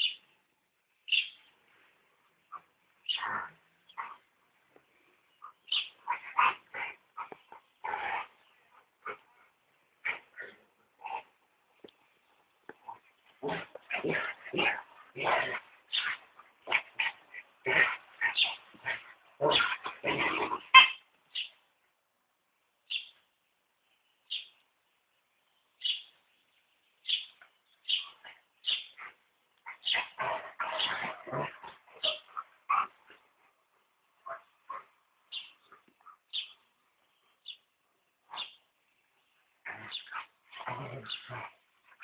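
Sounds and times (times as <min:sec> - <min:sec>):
dogs playing and vocalizing: 0:02.5 - 0:21.1, 0:27.4 - 0:36.6, 0:38.3 - 0:38.6, 0:39.6 - 0:42.0.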